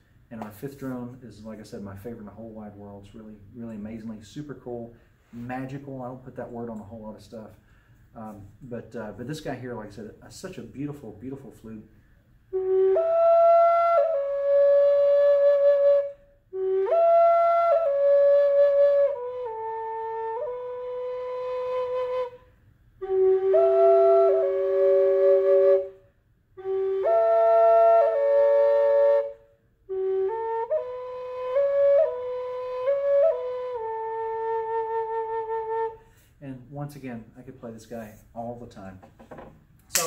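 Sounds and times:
wooden drone flute melody: 12.5 - 26.0, 26.6 - 36.0.

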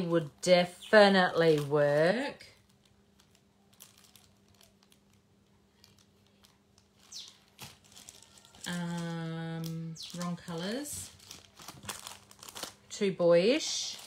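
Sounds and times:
plastic bags crinkling: 0.0 - 14.0.

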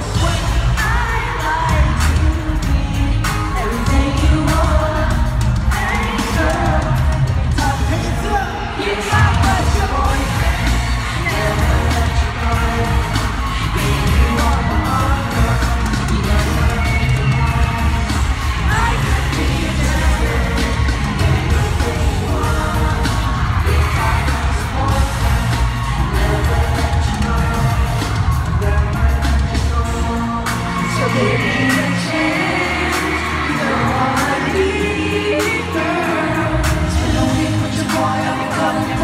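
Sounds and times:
live pop song over sound system: 0.0 - 39.0.

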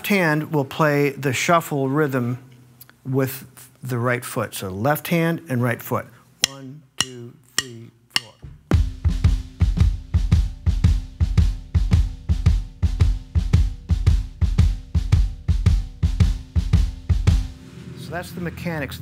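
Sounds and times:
person counting off: 6.4 - 8.5
drum kit shuffle rhythm: 6.4 - 17.7.

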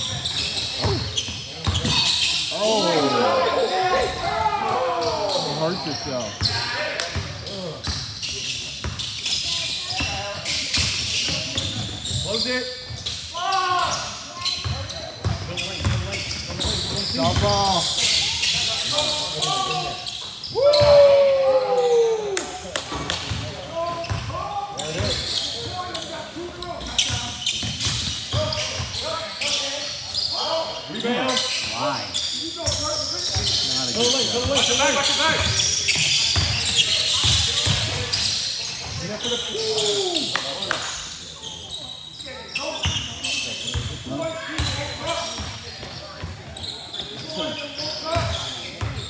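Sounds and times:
shoe squeaks: 0.0 - 4.2, 7.4 - 20.9, 23.8 - 40.3, 41.3 - 49.0
players' voices: 0.0 - 49.0
players shouting: 2.6 - 5.8.

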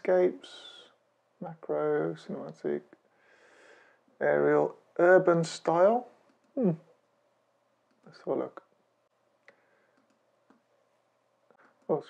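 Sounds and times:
computer mouse clicks: 6.2 - 6.6, 9.4 - 10.7.

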